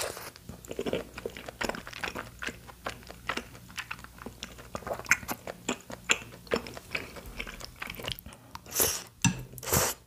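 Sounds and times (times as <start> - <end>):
chewing: 0.0 - 10.0
mouth clicks and smacks: 4.8 - 6.8.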